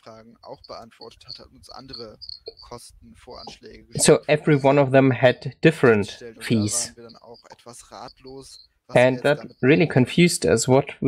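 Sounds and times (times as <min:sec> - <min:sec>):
faint speech: 0:00.0 - 0:04.3, 0:05.9 - 0:10.0.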